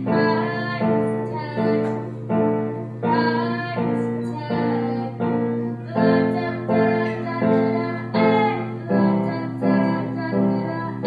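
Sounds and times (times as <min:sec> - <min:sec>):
grand piano slow chords: 0:00.0 - 0:11.0.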